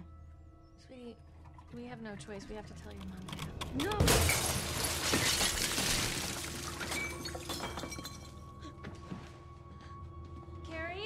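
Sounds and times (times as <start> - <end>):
glass fragments tinkling: 4.0 - 8.4.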